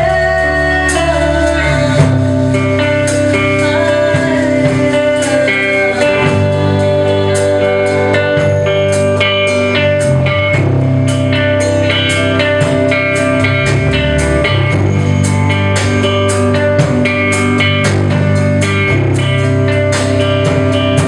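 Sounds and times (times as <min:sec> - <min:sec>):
bass line: 0:00.0 - 0:21.0
drums with steady beat: 0:00.0 - 0:21.0
electric guitar: 0:00.0 - 0:21.0.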